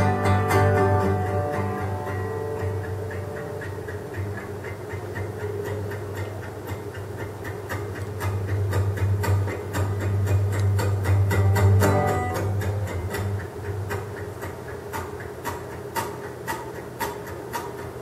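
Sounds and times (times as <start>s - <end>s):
picked acoustic guitar notes: 0.0s - 18.0s.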